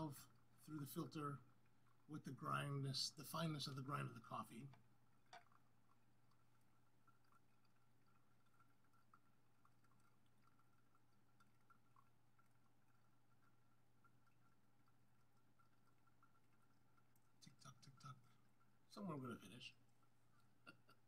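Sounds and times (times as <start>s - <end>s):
coffee dripping through filter: 0.0s - 21.0s
low steady hum: 0.0s - 21.0s
small ticks: 4.7s - 18.3s.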